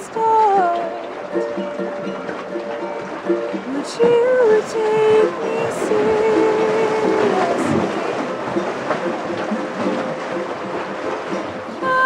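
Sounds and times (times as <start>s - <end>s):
strummed ukulele: 0.0s - 12.0s.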